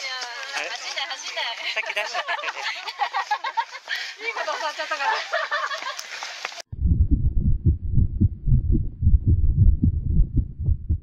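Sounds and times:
low muffled thumping: 0:06.7 - 0:11.0.

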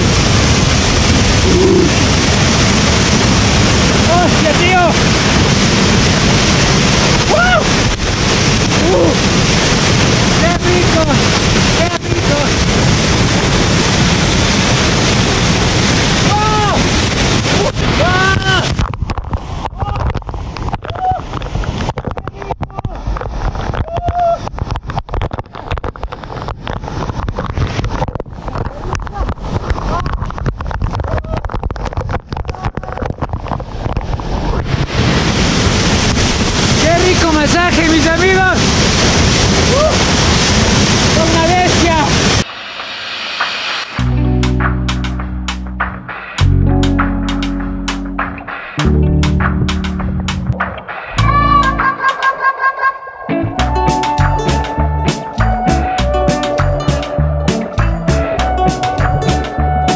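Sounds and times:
waterfall rushing and splashing: 0:00.0 - 0:59.9
person gasping and crying out: 0:01.4 - 0:02.0, 0:07.3 - 0:07.7
guitar music: 0:44.0 - 0:52.5, 0:53.2 - 0:59.9.

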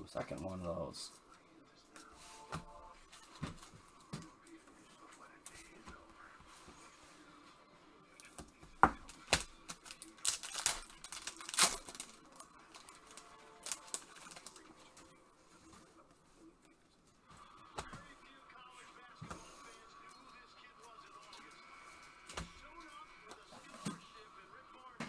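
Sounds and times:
wrapper tearing and crinkling: 0:09.1 - 0:14.7.

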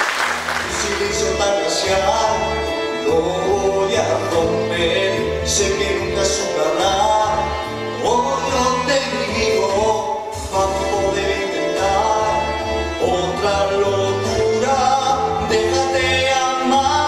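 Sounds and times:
instrumental backing music: 0:00.0 - 0:17.0
man singing: 0:00.6 - 0:17.0.

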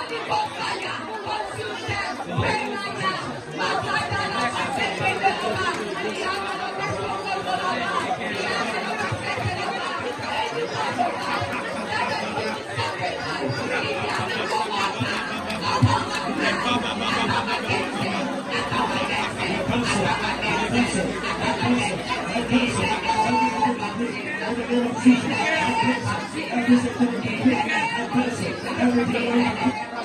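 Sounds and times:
congregation praying aloud: 0:00.0 - 0:30.0.

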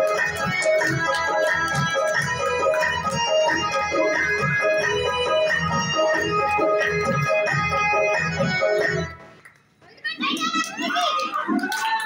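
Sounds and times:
music: 0:00.0 - 0:09.5
girls shouting excitedly: 0:10.0 - 0:12.0.

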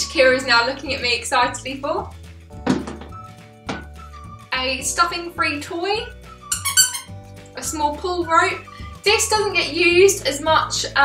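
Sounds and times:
quiet background music: 0:00.0 - 0:11.0
thuds on wooden table: 0:02.6 - 0:03.9.

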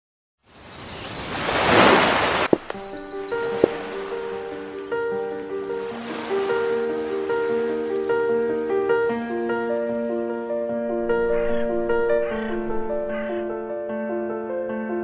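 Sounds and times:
gentle melody of held notes: 0:02.5 - 0:14.6.

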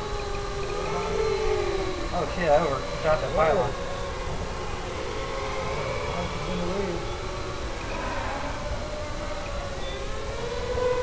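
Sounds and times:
quadcopter motors whining: 0:00.0 - 0:11.0.

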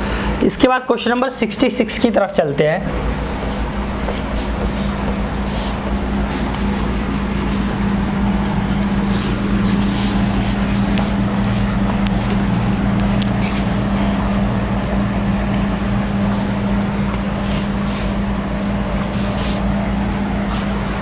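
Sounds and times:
steady hum with hiss: 0:00.0 - 0:21.0
cloth wiping a whiteboard: 0:01.0 - 0:21.0.

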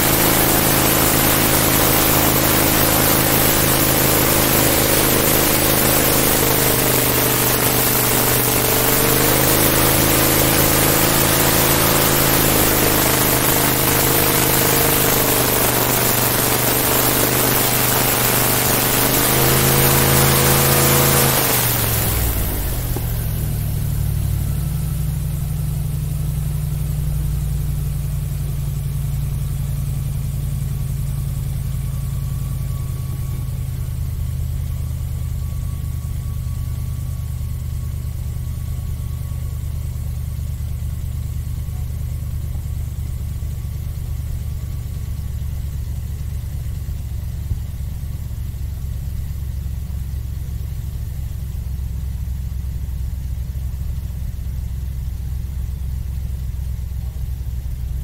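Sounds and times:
airboat engine and propeller: 0:00.0 - 0:39.4.

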